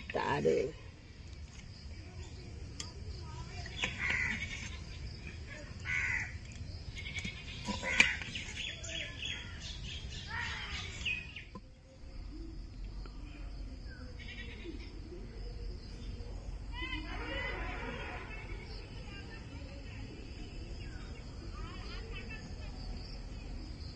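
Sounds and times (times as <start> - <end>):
harsh animal calls: 3.8 - 9.6
faint low hum: 11.1 - 17.1.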